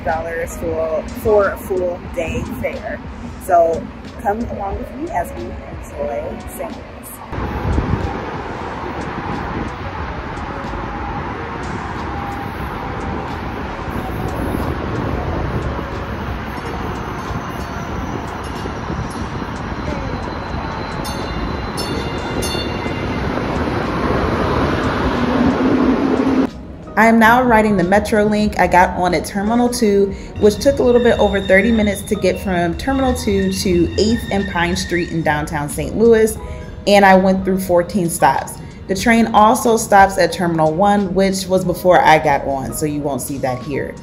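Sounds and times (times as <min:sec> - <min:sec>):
light-rail train rail and motor noise: 0:00.0 - 0:27.0.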